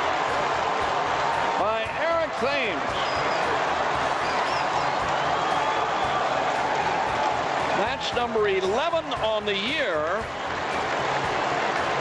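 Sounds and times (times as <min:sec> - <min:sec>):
crowd cheering and clapping: 0:00.0 - 0:12.0.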